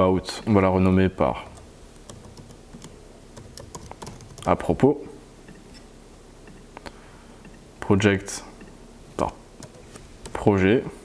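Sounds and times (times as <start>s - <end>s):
computer keyboard typing: 1.4s - 4.6s, 9.6s - 10.5s.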